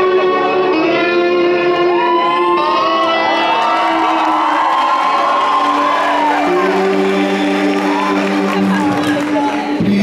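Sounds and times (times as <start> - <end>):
live band guitar and keyboard chords: 0.0 - 10.0
audience cheering: 1.9 - 9.8.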